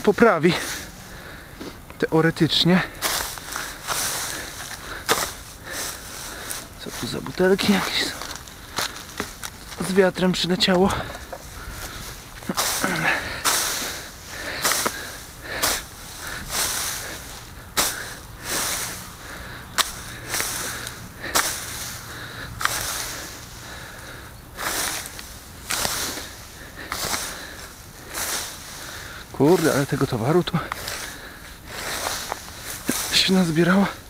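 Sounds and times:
rake scratching through dry grass: 2.6s - 34.0s.

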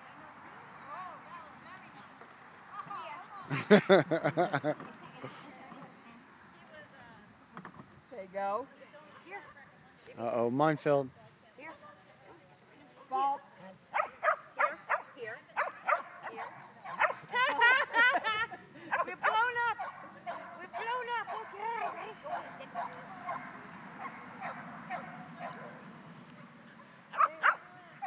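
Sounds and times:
faint background hiss: 0.0s - 28.0s
dog barking: 14.0s - 17.2s, 18.9s - 25.8s, 27.1s - 27.7s
dog yipping: 14.0s - 17.2s.

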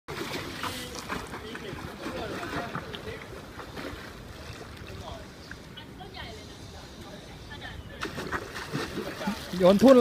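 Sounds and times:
light water sounds: 0.1s - 10.0s.

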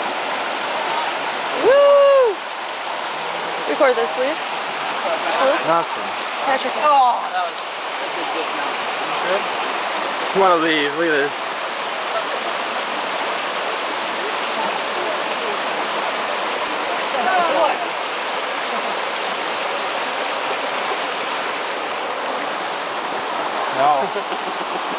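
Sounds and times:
stream rushing over rocks: 0.0s - 24.9s.

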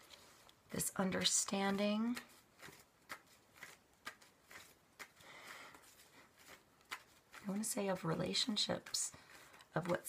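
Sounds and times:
cards being shuffled: 0.0s - 10.0s
rustle of cards: 0.0s - 10.0s.

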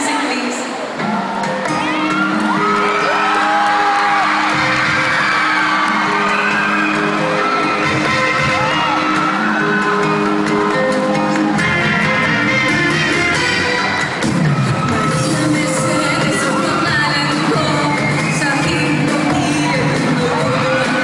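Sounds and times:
pop music over sound system: 0.0s - 21.0s
audience whooping and cheering: 0.9s - 21.0s.

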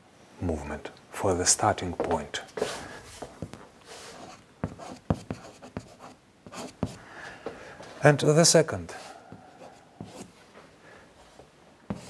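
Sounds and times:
chalk scratching on blackboard: 2.6s - 7.0s, 9.0s - 10.4s
chalk tapping on blackboard: 4.2s - 7.0s, 10.0s - 10.3s.

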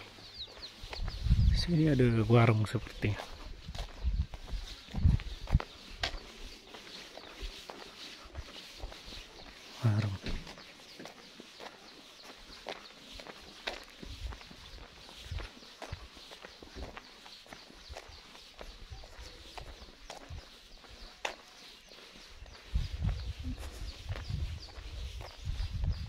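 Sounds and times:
footsteps on path: 0.0s - 26.0s.

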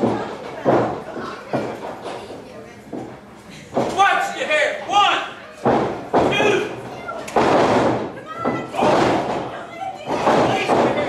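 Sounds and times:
slaps and thuds of bodies: 5.6s - 6.7s, 7.3s - 9.5s, 10.1s - 11.0s.

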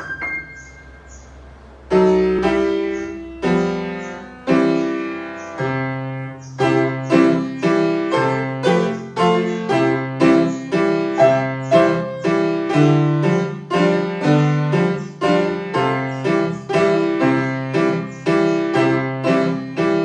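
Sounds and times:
piano chords: 0.0s - 20.0s.

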